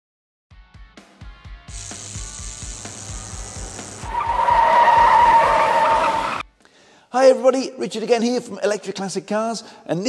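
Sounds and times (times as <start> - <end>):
tyre squeal sound effect: 4.0 - 6.4.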